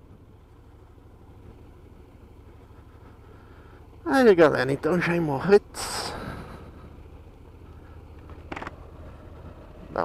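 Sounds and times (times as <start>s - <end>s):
motorcycle engine at low speed: 0.0s - 10.0s
road rumble on cobblestones: 0.0s - 10.0s.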